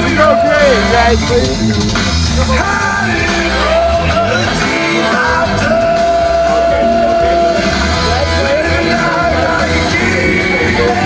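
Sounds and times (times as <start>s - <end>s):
hard rock song with yelled vocals: 0.0s - 11.0s.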